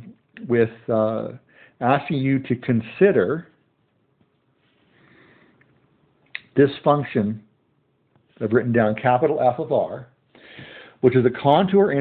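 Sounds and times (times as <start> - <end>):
faint sniff: 4.6 - 5.6, 10.3 - 11.0.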